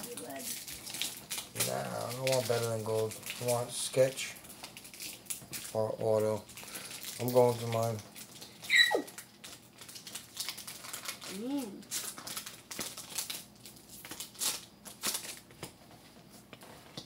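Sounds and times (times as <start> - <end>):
wrappers crinkling: 0.0 - 17.0.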